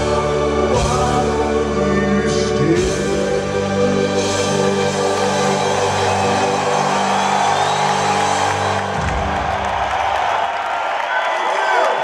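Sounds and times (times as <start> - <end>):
band sustained chord with piano: 0.0 - 9.4
crowd cheering: 4.2 - 12.0.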